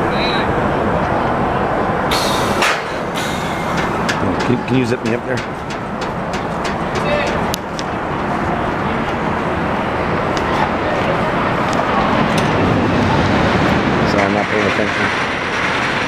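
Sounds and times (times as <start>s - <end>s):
roller coaster rumbling on track: 0.0s - 16.0s.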